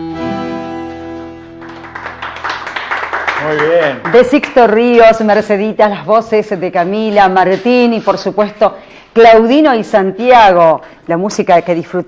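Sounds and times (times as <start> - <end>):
bandoneon and guitar chord: 0.0 - 1.5
applause: 1.6 - 5.0.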